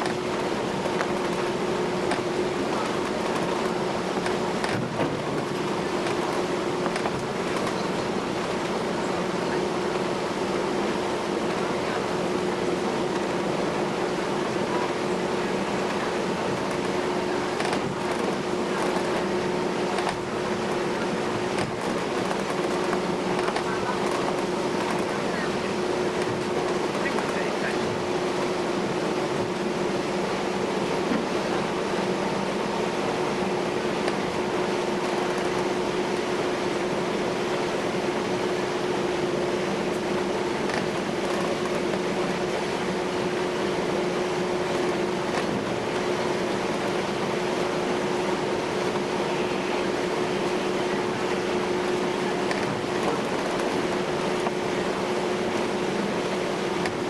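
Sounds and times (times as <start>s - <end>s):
ferry engines droning: 0.0s - 57.0s.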